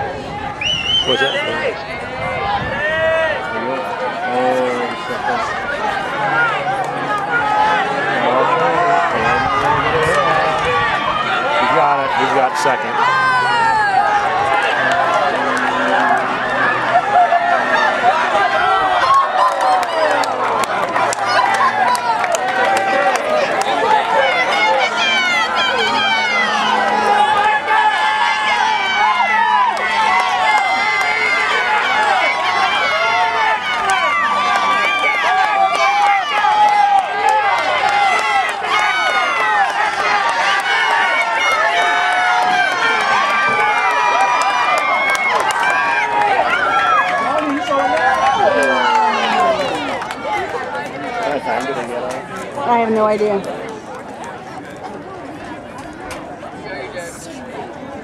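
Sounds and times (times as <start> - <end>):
crowd cheering and shouting: 0.0 - 58.0.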